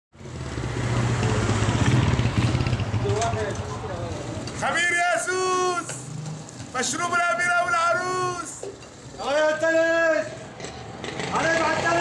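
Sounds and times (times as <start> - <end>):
small motorcycle passing by: 0.2 - 3.6, 10.6 - 12.0.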